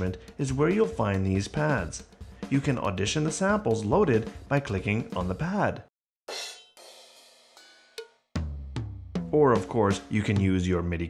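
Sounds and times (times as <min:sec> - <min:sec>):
cowbell hit: 0:06.3 - 0:08.2
cymbal hits: 0:06.3 - 0:08.2.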